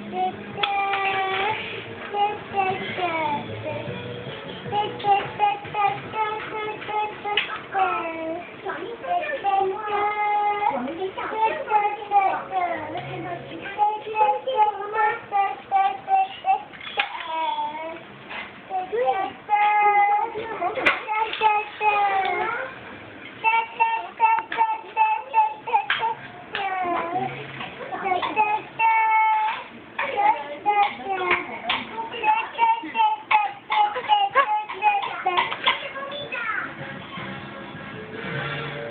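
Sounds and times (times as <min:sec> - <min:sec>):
child singing: 0:00.0 - 0:03.9, 0:04.6 - 0:18.0, 0:18.7 - 0:22.8, 0:23.4 - 0:36.6.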